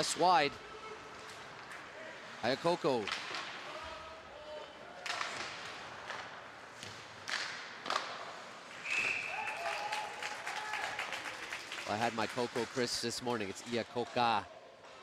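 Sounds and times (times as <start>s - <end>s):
hockey stick and puck knocks: 5.0s - 8.3s.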